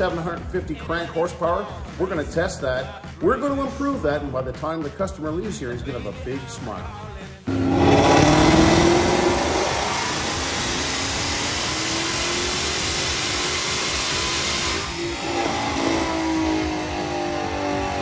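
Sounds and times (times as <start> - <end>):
car engine at full throttle: 7.5 - 18.0.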